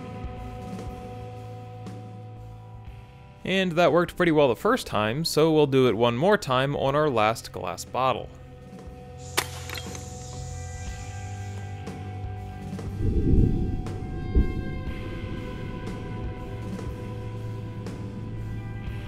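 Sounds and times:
background music with sustained tones: 0.0 - 19.0
air rifle shot: 9.2 - 10.5
deep drum-like hit: 12.8 - 17.1.

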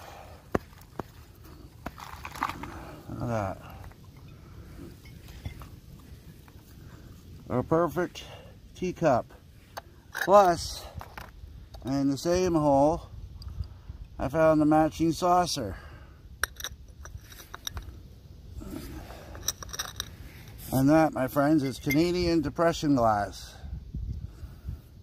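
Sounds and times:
low steady rumble: 0.0 - 25.0
handling teacup rustling: 18.6 - 20.9, 21.5 - 22.2.

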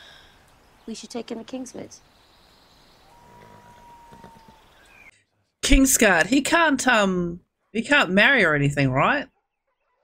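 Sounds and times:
faint horse sounds: 2.9 - 5.6.

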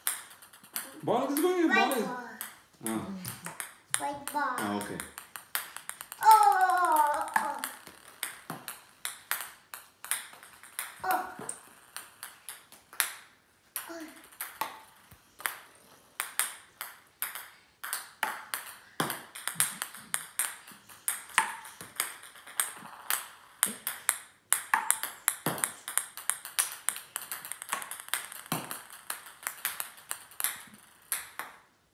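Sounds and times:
paddle hitting ping pong balls: 0.0 - 31.8
ping pong balls bouncing on floor: 0.0 - 31.9.

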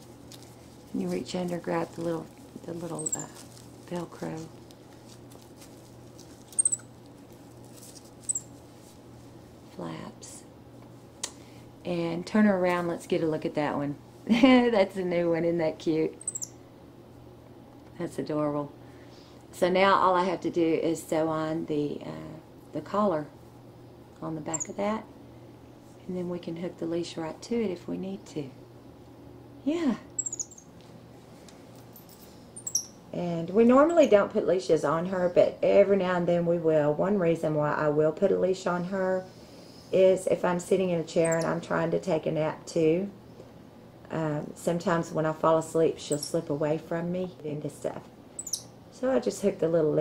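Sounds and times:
monkey squeaking: 2.9 - 3.4, 6.5 - 7.0, 8.3 - 8.5, 16.2 - 16.5, 24.5 - 24.8, 30.2 - 30.7, 32.6 - 33.0, 41.2 - 41.6, 46.1 - 46.4, 48.4 - 48.7.

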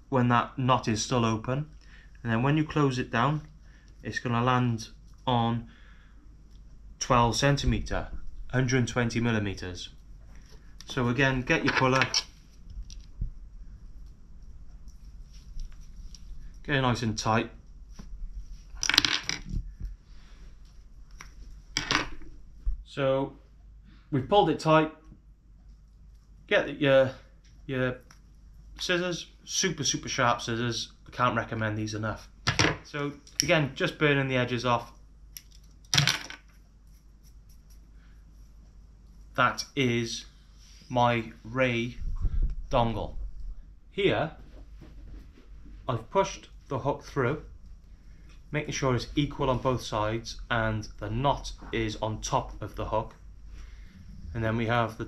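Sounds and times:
fishing line handling ticks and rustles: 13.9 - 16.7, 34.9 - 39.4.

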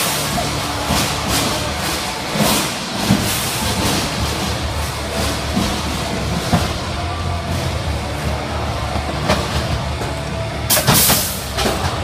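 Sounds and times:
music over loudspeakers: 0.0 - 12.0.

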